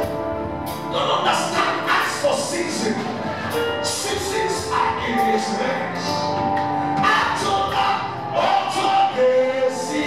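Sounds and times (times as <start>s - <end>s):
instrumental accompaniment: 0.0s - 10.0s
man singing into a microphone: 1.0s - 10.0s.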